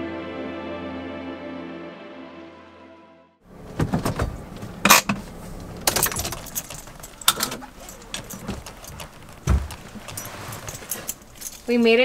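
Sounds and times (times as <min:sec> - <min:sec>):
keys jangling on a ring: 0:05.9 - 0:12.0
light metallic clinks: 0:05.9 - 0:12.0.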